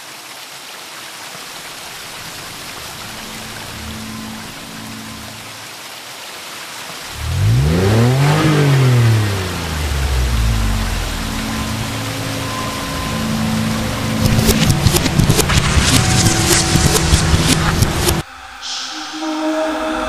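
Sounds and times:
engine passing: 2.5s - 5.5s, 7.1s - 18.3s
faint low tones: 8.2s - 19.2s
rushing hiss: 14.8s - 20.0s.

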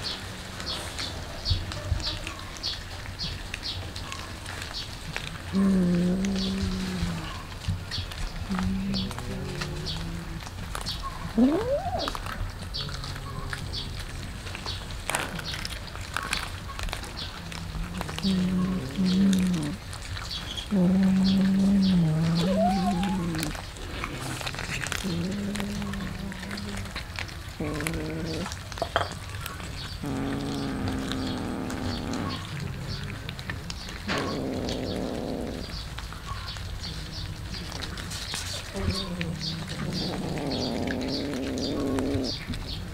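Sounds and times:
cats growling: 0.0s - 42.9s
clicks of eating: 0.0s - 42.9s
cat meowing: 21.1s - 23.6s.

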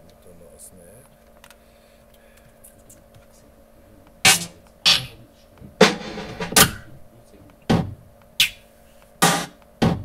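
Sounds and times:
electronic drum hits: 4.3s - 5.2s, 5.8s - 6.9s, 7.7s - 8.0s, 9.2s - 10.0s.

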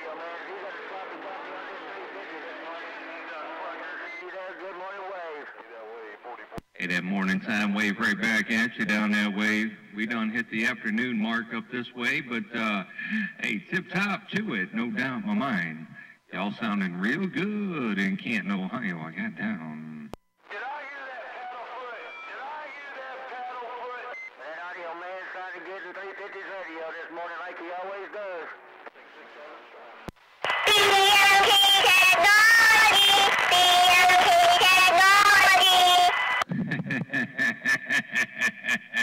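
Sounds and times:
hissy distorted radio transmission: 0.0s - 16.4s, 17.0s - 37.1s
cb radio voices: 0.0s - 39.0s.

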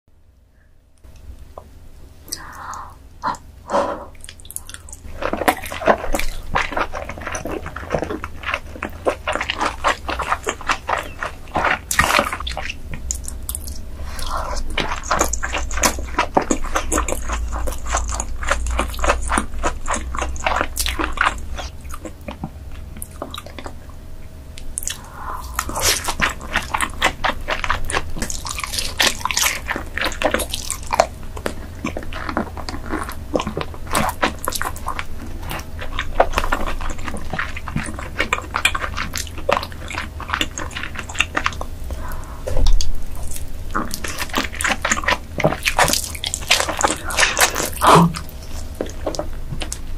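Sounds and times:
wet chewing and mouth smacking: 4.1s - 49.9s
wet mouth clicks: 24.6s - 27.6s.

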